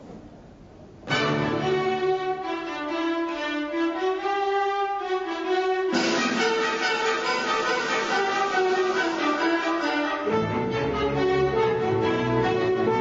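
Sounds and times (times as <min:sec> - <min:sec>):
full orchestra playing: 0:01.1 - 0:13.0
string melody: 0:01.1 - 0:13.0
trumpets: 0:01.1 - 0:13.0.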